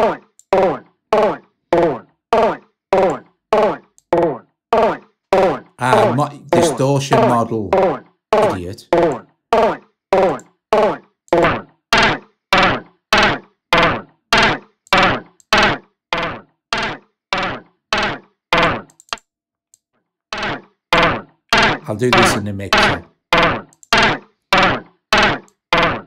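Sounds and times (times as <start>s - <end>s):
chopped spoken voice sample: 5.8s - 7.8s, 8.4s - 8.9s, 21.8s - 23.0s.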